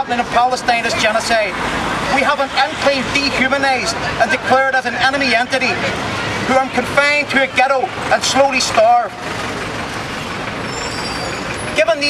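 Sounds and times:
road traffic noise: 0:00.0 - 0:12.0.

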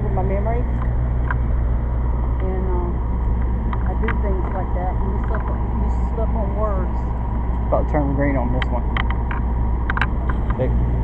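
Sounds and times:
traffic engine hum: 0:00.0 - 0:11.0.

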